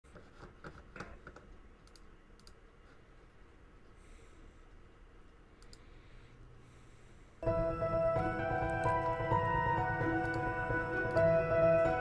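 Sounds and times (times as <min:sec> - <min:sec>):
low room noise: 0:00.1 - 0:12.0
faint clicks: 0:01.8 - 0:02.6, 0:05.2 - 0:05.9.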